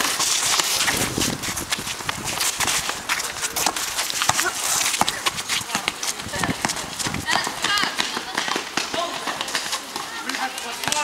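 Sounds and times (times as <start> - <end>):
running footsteps: 0.0 - 11.0
players calling out: 2.6 - 11.0
basketball bouncing on court: 3.6 - 11.0.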